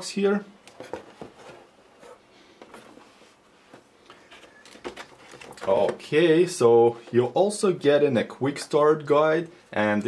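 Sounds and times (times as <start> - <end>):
cardboard packaging rustling: 0.7 - 3.1, 3.8 - 6.1.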